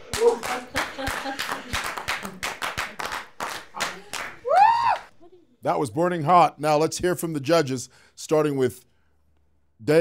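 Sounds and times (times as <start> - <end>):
small audience clapping: 0.0 - 5.1.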